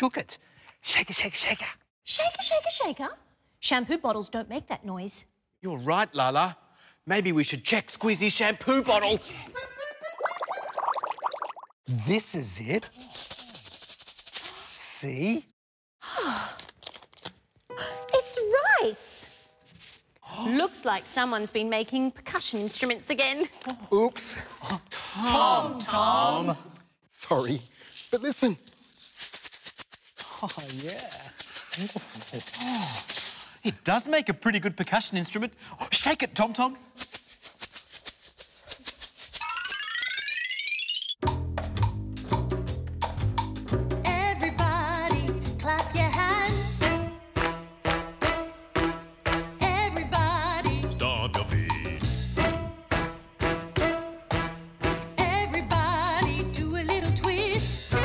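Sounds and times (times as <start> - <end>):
rice rattling in plastic bottle: 29.0 - 33.5
cartoon scurrying blips: 39.4 - 41.2.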